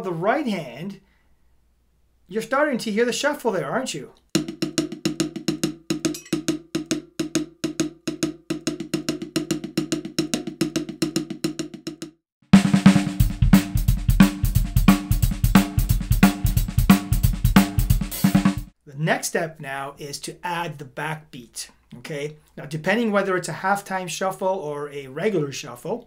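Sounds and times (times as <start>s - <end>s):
drum kit playing a groove: 4.3s - 12.0s, 12.6s - 18.8s.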